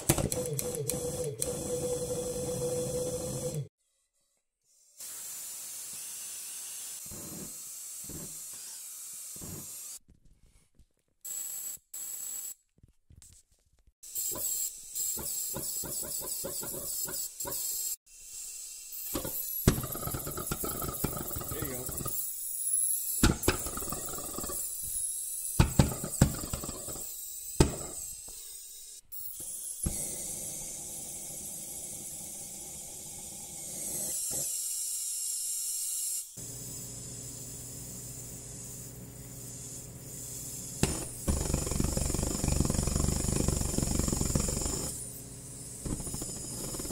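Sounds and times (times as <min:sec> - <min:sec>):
sharp pops: 0:25.6 - 0:27.0, 0:40.8 - 0:43.0
hissing gas and air: 0:29.4 - 0:34.6, 0:36.4 - 0:46.9
pulsejet sputtering pulses: 0:40.8 - 0:45.0.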